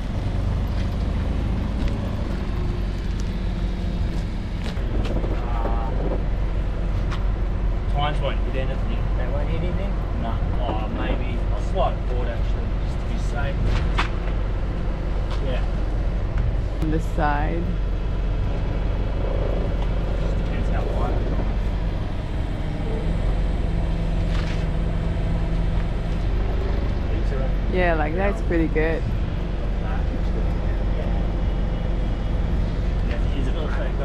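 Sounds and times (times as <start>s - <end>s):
forklift engine idling: 0.0s - 34.0s
people talking: 5.4s - 6.2s, 7.9s - 13.6s, 15.4s - 15.7s, 16.8s - 17.7s, 20.5s - 21.4s, 27.1s - 29.1s, 29.8s - 31.3s, 33.0s - 34.0s.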